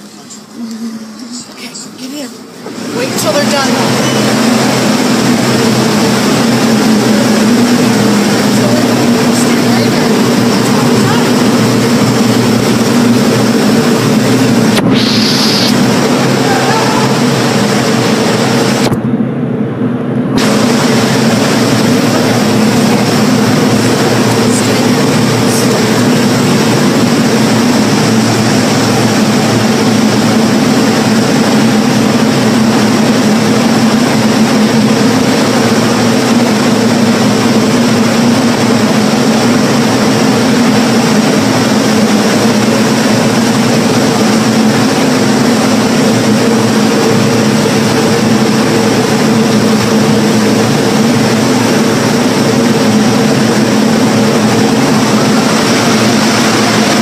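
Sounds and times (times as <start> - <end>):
loud mechanical roar: 0.0 - 57.0.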